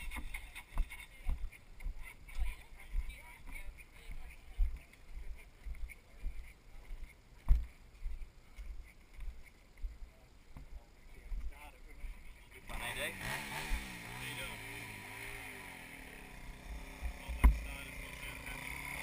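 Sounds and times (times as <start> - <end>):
dirt bike engine revving: 12.7 - 19.0.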